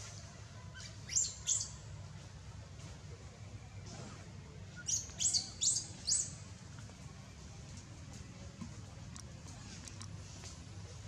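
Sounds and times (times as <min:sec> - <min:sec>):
small bird chirping: 0:00.7 - 0:01.8, 0:04.7 - 0:06.4.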